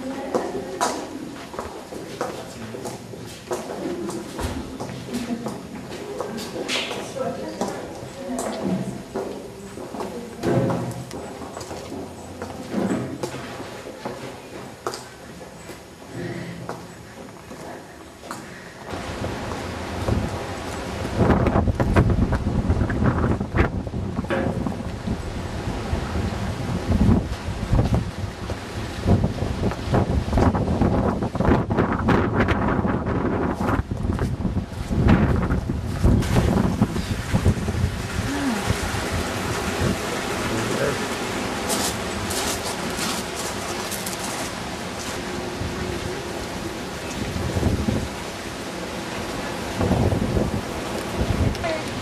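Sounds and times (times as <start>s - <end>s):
steady outdoor hiss: 0.0s - 52.0s
wind buffeting microphone: 18.9s - 44.0s, 44.6s - 52.0s.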